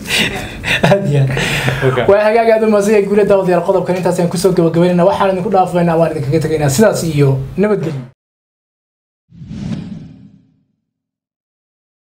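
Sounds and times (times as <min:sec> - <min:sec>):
whoosh sound effect: 0:09.3 - 0:10.7.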